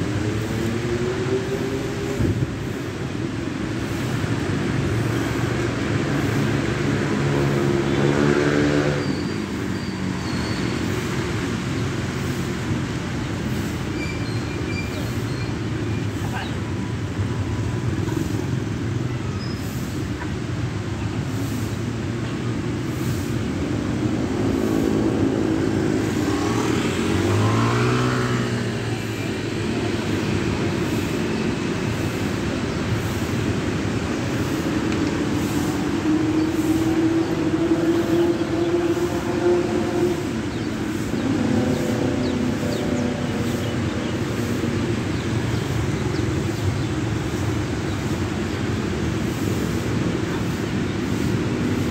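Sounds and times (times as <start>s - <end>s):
motorcycle and car engines rumbling: 0.0s - 51.9s
vehicle pulling away: 23.7s - 47.8s.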